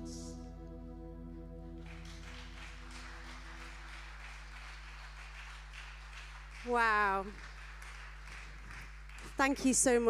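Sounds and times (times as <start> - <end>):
held notes of live song: 0.0 - 5.2
sound system hum: 0.0 - 6.4
audience applause: 1.8 - 9.5.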